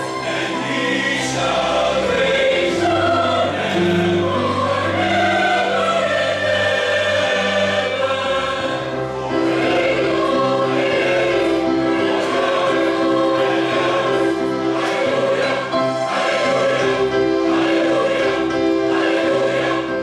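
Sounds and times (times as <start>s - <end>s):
choir singing in harmony: 0.0s - 20.0s.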